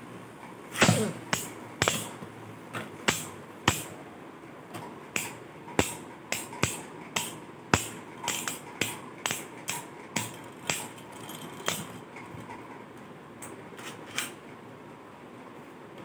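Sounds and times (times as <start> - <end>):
spinning tops clacking: 5.2 - 12.0.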